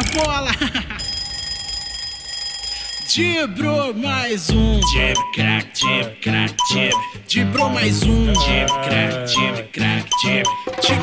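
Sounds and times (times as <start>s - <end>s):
alarm clock ringing: 1.0s - 3.4s.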